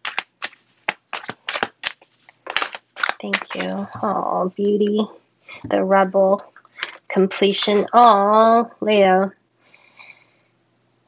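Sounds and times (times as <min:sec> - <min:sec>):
cards being shuffled: 0:00.0 - 0:03.9.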